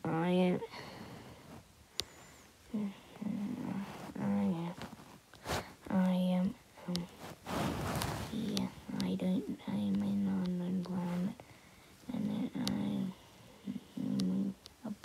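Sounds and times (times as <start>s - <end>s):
person's voice: 0.0s - 0.9s, 2.7s - 4.9s, 5.5s - 7.2s, 8.0s - 11.4s, 12.0s - 15.0s.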